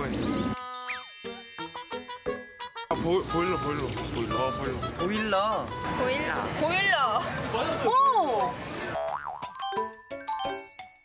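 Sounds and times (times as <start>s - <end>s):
cartoon boing sound effect: 9.0s - 9.6s.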